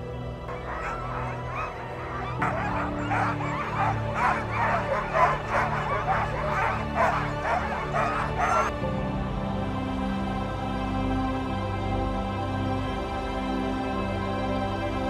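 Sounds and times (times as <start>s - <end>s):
background music: 0.0s - 15.0s
sled dogs barking and yipping: 0.5s - 8.8s.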